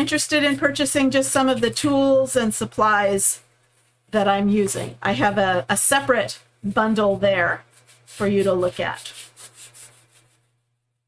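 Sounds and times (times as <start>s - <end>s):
hands rubbing transfer swishing: 6.7s - 10.5s.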